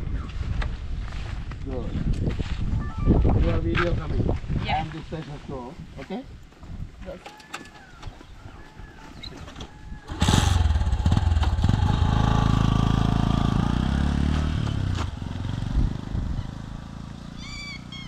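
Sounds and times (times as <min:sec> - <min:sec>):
small motorcycle engine revving: 0:10.1 - 0:18.0.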